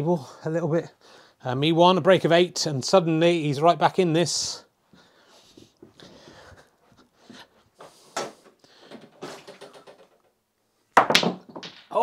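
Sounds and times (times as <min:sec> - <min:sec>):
snooker balls clacking: 0:08.9 - 0:10.3, 0:11.0 - 0:12.0
cue striking ball: 0:11.0 - 0:12.0.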